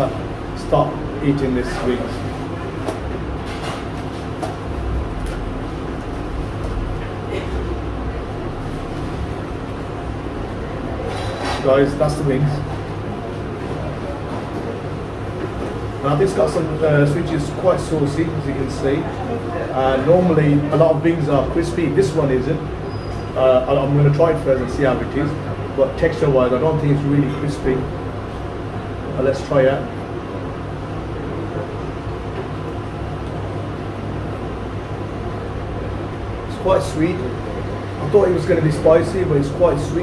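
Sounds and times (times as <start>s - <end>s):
restaurant dining room hum: 0.0s - 40.0s.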